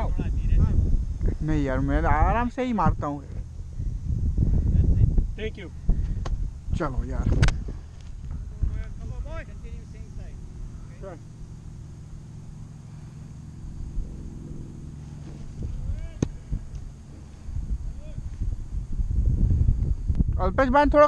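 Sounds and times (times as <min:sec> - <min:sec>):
wind on microphone: 0:00.0 - 0:10.9, 0:13.7 - 0:21.0
low engine hum: 0:00.0 - 0:20.3.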